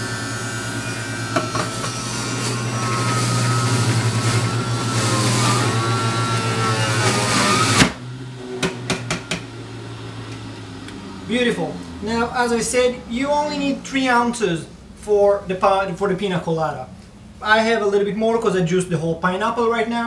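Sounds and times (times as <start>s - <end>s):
juicer motor humming and whining: 0.0s - 12.5s.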